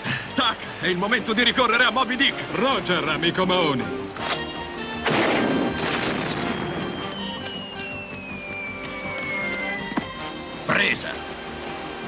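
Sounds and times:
background music: 0.0s - 12.0s
high tone falling in pitch: 6.5s - 10.2s.

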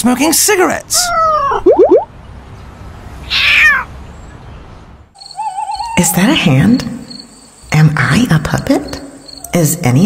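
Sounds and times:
cat meowing: 1.0s - 1.6s, 3.3s - 3.9s.

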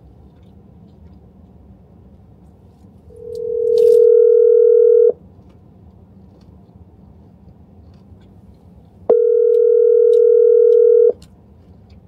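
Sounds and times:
phone call tone beep: 3.2s - 5.2s, 9.1s - 11.2s.

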